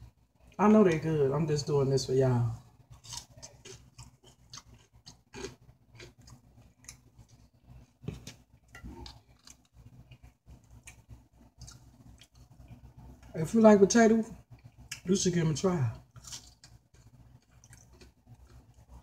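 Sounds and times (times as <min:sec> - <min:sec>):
person chewing: 0:02.7 - 0:13.3, 0:14.5 - 0:15.1, 0:16.0 - 0:19.0.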